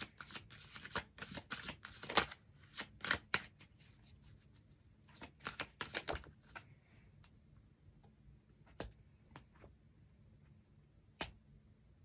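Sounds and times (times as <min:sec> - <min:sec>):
cards being shuffled: 0:00.0 - 0:04.4, 0:05.1 - 0:06.7.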